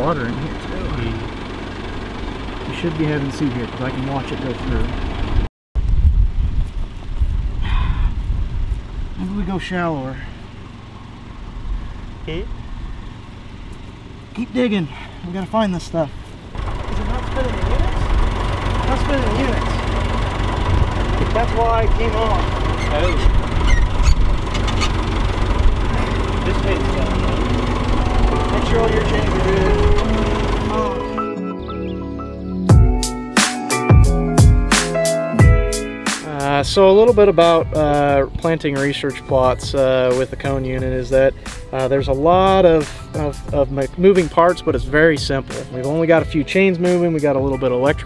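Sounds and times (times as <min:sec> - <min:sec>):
tractor engine idling: 0:00.0 - 0:05.5, 0:06.8 - 0:48.0
wind buffeting microphone: 0:05.3 - 0:09.6, 0:19.9 - 0:30.5, 0:39.4 - 0:44.1
music: 0:26.4 - 0:48.0.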